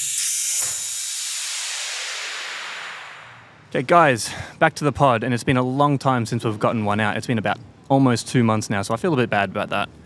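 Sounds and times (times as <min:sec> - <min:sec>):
transition effect hiss: 0:00.0 - 0:03.7.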